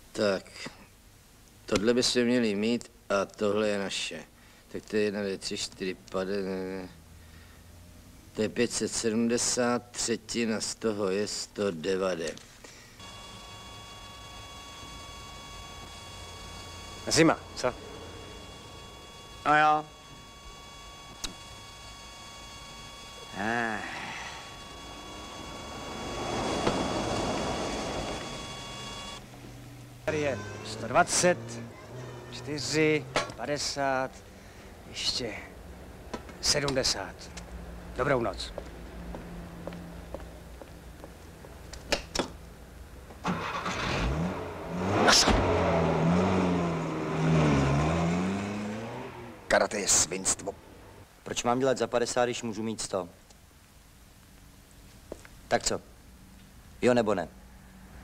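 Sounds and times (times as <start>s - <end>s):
faint steady hum: 0.0s - 43.5s, 48.6s - 58.0s
car engine starting and revving: 24.8s - 29.2s, 43.2s - 49.6s
vehicle passing by: 44.0s - 49.5s.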